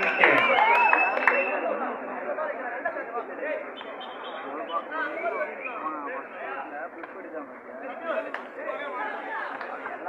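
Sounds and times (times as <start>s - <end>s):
people talking over each other: 0.0s - 10.0s.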